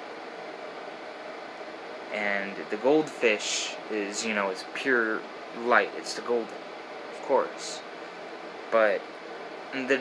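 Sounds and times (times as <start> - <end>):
air conditioner hissing: 0.0 - 10.0.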